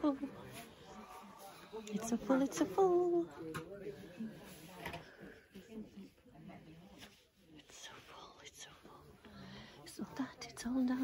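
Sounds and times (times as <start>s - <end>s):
faint chatter of voices: 0.0s - 11.0s.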